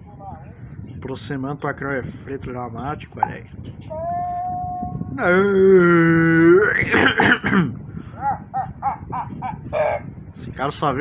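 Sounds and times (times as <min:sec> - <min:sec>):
person coughing: 0:06.9 - 0:07.8.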